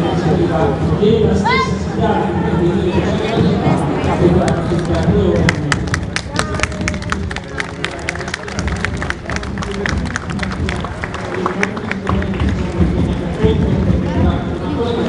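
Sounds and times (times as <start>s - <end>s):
crowd chatter: 0.0s - 15.0s
spectators clapping: 4.4s - 13.5s.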